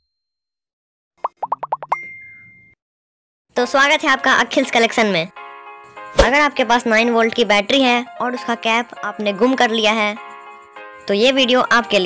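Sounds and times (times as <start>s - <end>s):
cartoon pop blips: 1.2s - 2.5s.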